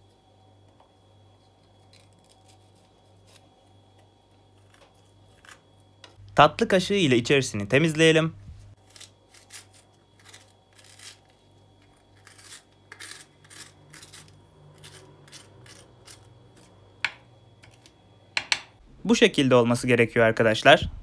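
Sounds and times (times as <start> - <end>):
spoon scraping pepper: 8.9 - 16.8.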